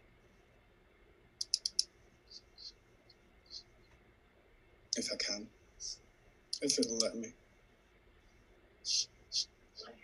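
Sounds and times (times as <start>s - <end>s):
computer mouse clicks: 1.4s - 2.7s, 6.5s - 7.2s.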